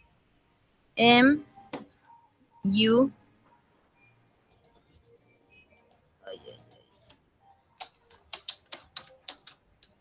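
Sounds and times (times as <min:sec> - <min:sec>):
keyboard key clicks: 0:07.8 - 0:10.0.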